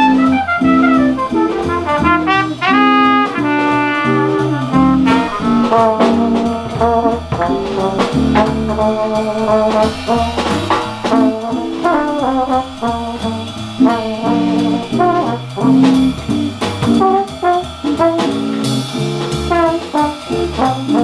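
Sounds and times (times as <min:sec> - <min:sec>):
bass line: 0:00.0 - 0:21.0
drums: 0:00.0 - 0:21.0
trumpet lead: 0:00.0 - 0:21.0.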